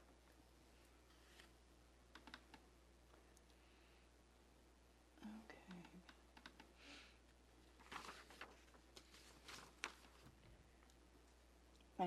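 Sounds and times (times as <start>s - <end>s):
soft hiss: 0.0s - 12.0s
laptop keys typing: 2.1s - 2.6s, 5.7s - 6.7s.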